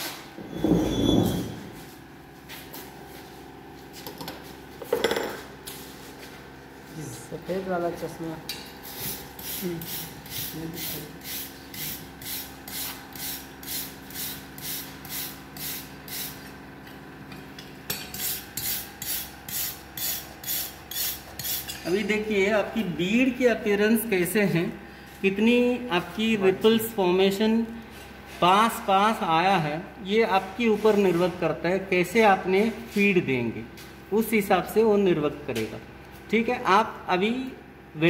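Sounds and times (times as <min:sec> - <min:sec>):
wire brush scrubbing metal: 0:17.9 - 0:21.9.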